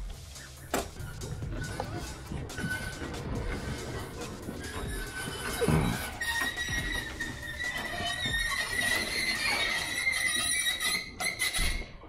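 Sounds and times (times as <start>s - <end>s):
trailer ramp door squealing: 0.6s - 12.0s.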